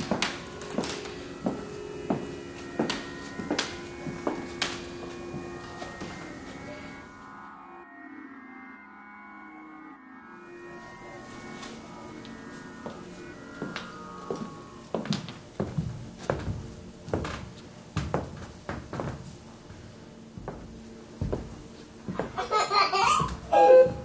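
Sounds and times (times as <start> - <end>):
footsteps on hard floor: 0.0 - 7.0, 11.2 - 24.0
faint background music: 0.0 - 24.0.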